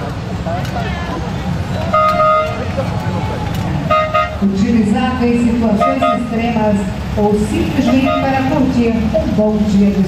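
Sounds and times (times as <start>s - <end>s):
car horn honk: 1.9s - 2.6s, 3.9s - 4.4s, 5.7s - 6.4s, 7.8s - 8.5s.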